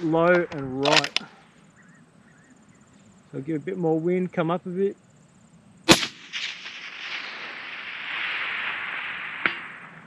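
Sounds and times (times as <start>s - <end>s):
rifle shot echo rumbling: 5.9s - 10.0s.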